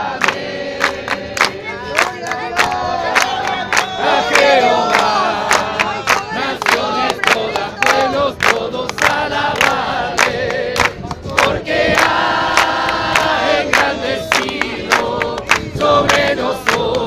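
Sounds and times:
congregation singing: 0:00.0 - 0:17.0
rhythmic hand clapping: 0:00.0 - 0:17.0.

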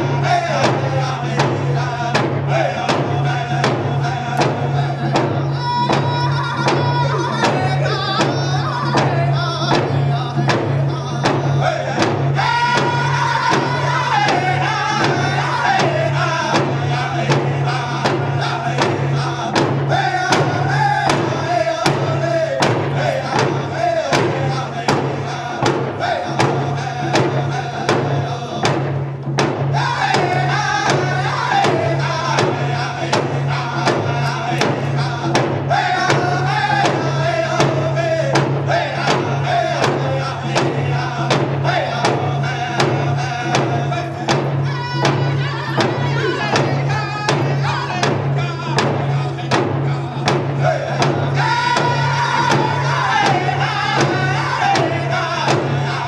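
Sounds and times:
group singing in unison: 0:00.0 - 0:56.0
hand drum beat: 0:00.0 - 0:56.0.

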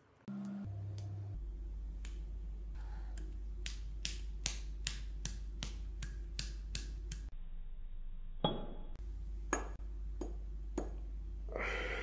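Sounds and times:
low hum: 0:00.3 - 0:03.6.

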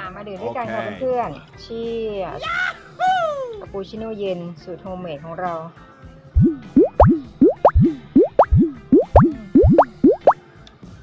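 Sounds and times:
background music: 0:06.4 - 0:10.4
cartoon rising bloop effects: 0:06.4 - 0:10.4.

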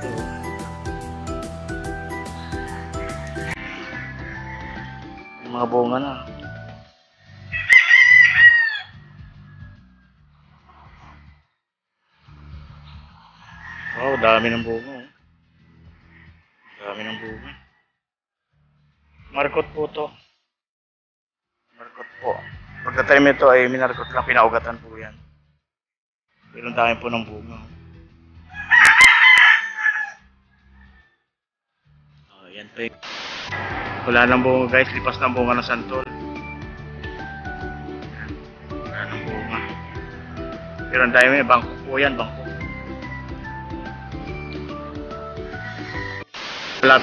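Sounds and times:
background music with low beat: 0:00.0 - 0:05.6, 0:33.0 - 0:46.2
rooster crowing: 0:03.6 - 0:05.1, 0:07.5 - 0:09.2, 0:13.5 - 0:15.1, 0:28.5 - 0:31.2.

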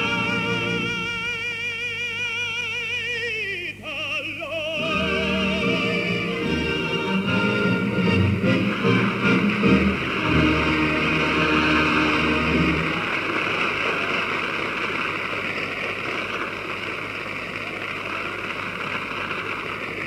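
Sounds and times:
recording hiss: 0:00.0 - 0:20.0.

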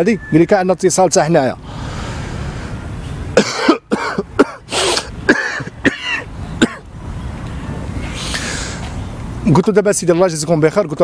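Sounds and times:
man coughing: 0:03.4 - 0:06.8.

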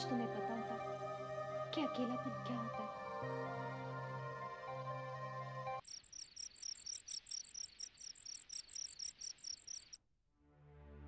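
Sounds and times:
background music: 0:00.0 - 0:05.8
soft music: 0:00.0 - 0:05.8, 0:10.4 - 0:11.0
cricket chirping: 0:05.8 - 0:10.0.

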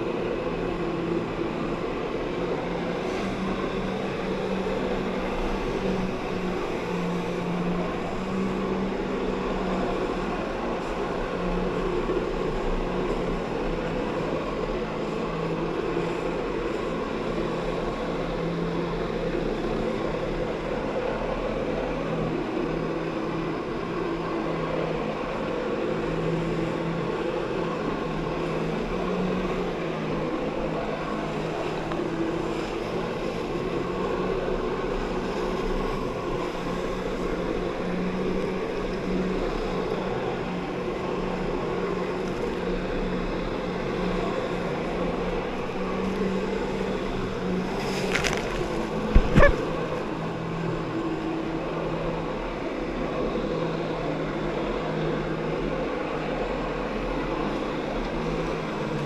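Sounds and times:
personal watercraft engine running: 0:00.0 - 0:59.0
water rushing and churning: 0:00.0 - 0:59.0.

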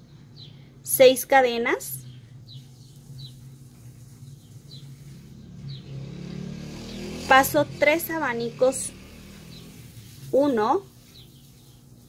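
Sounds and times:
small bird chirping faintly: 0:02.0 - 0:07.1.

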